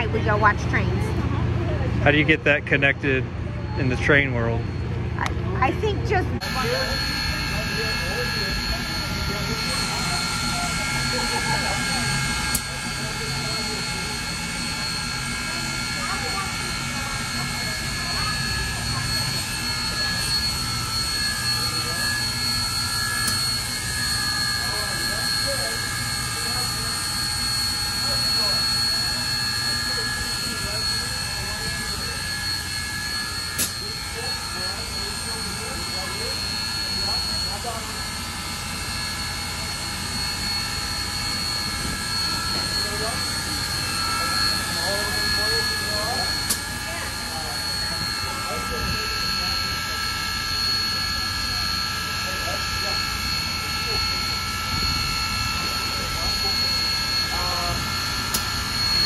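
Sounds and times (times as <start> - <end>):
high whining tones: 0.0 - 59.0.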